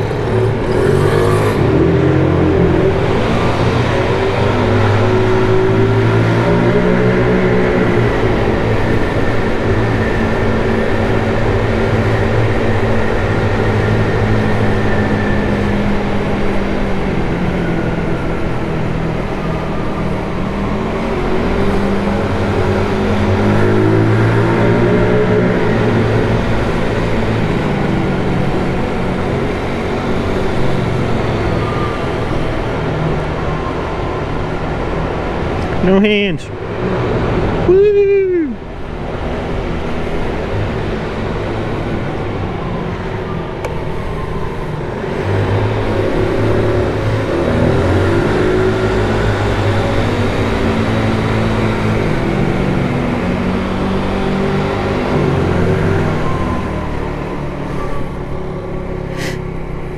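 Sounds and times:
scooter engine pulling away: 0:00.0 - 0:09.0.

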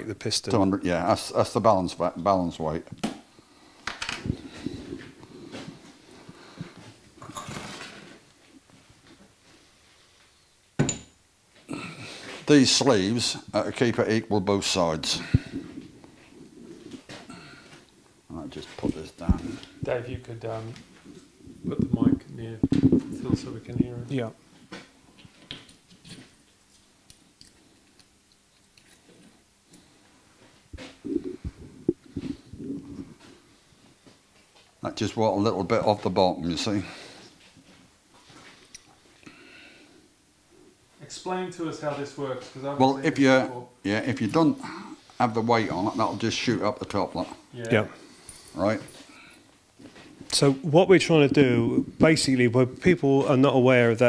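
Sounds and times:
microphone handling knocks and rubs: 0:21.0 - 0:24.1.

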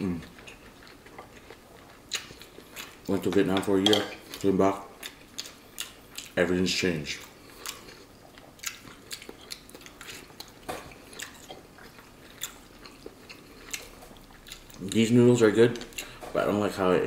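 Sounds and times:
person chewing: 0:00.0 - 0:16.5.

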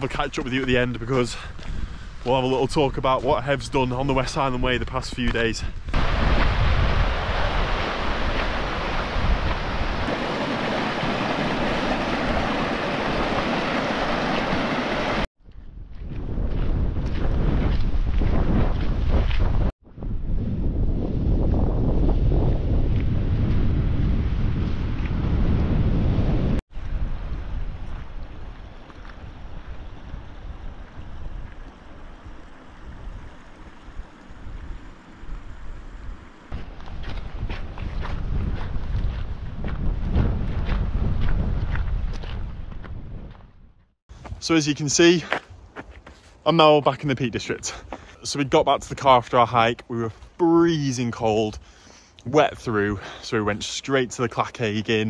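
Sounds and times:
wind buffeting microphone: 0:00.0 - 0:44.4
rushing mountain stream: 0:05.9 - 0:15.3.

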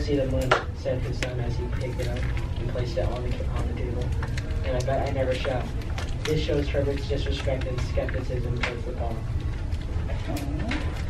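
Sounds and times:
low hum: 0:00.0 - 0:11.0
low murmuring voice: 0:00.9 - 0:11.0.

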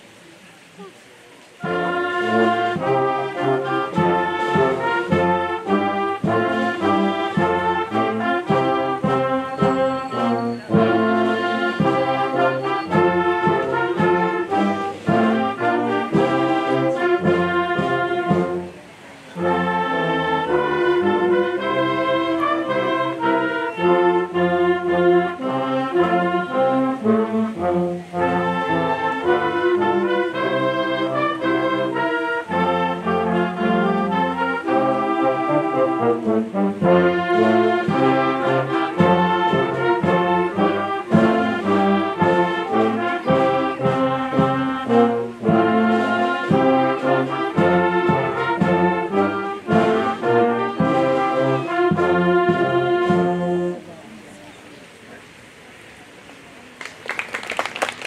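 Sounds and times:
wind band playing: 0:00.0 - 0:54.5.

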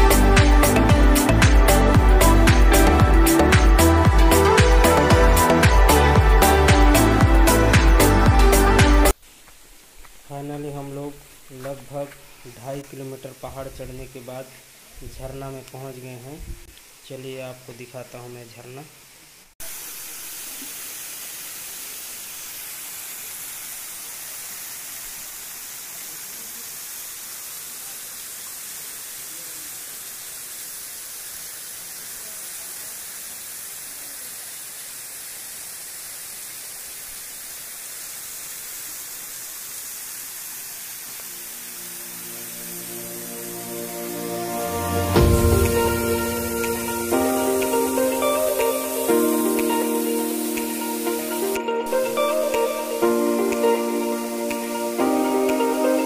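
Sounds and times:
music: 0:00.0 - 0:09.2, 0:42.0 - 0:56.0
waterfall roaring: 0:19.7 - 0:56.0.

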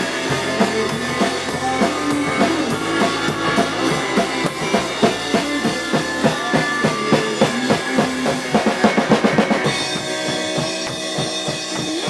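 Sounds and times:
electric bass: 0:00.0 - 0:10.4
drum kit steady beat: 0:00.0 - 0:12.0
electric guitar: 0:00.0 - 0:12.0.

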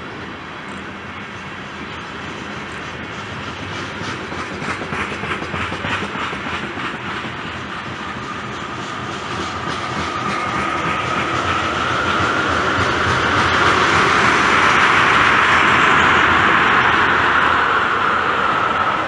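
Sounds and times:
train wheels clicking over rail joints: 0:00.6 - 0:16.8.

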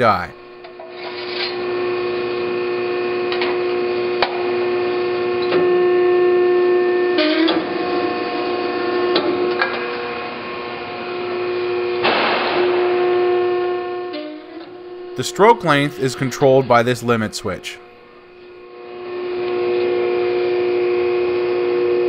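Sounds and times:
hydraulic power unit humming: 0:00.0 - 0:22.0.

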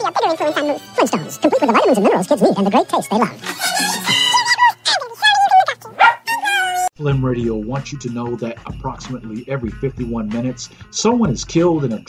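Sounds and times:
high-pitched animal-like calls: 0:03.4 - 0:04.8, 0:05.8 - 0:06.9.

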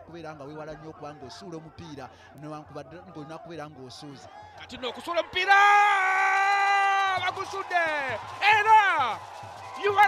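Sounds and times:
commentator shouting: 0:00.0 - 0:09.2, 0:09.8 - 0:10.0.

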